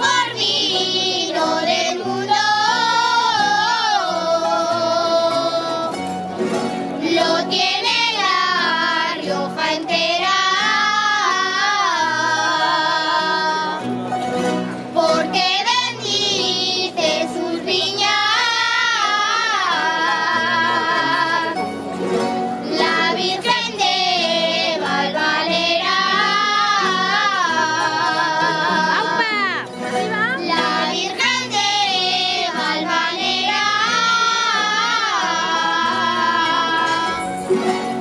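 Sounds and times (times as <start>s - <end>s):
children singing in unison: 0.0s - 6.0s, 7.0s - 13.8s, 14.9s - 21.6s, 22.6s - 29.2s, 30.5s - 37.3s
strummed and plucked guitars: 0.0s - 38.0s.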